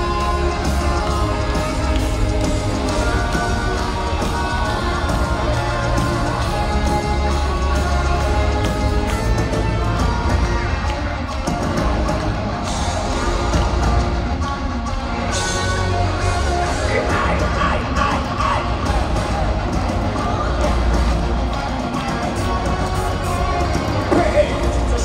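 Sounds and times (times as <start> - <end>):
crowd cheering and yelling: 0.0 - 25.0
metal band playing loud: 0.0 - 25.0.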